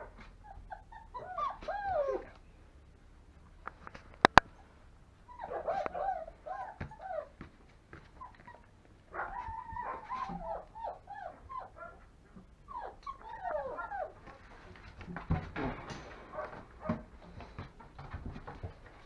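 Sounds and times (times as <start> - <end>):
puppies whining and whimpering: 0.4 - 2.4, 5.3 - 7.4, 8.2 - 14.2.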